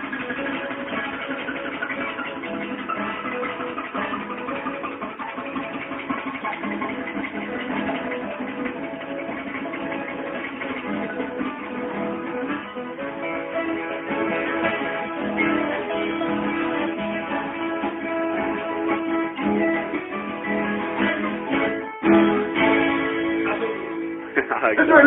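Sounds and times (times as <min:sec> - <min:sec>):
solo guitar plucked and strummed: 0:00.0 - 0:25.0.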